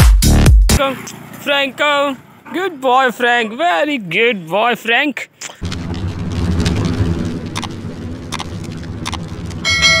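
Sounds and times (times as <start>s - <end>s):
low rumble: 5.6s - 10.0s.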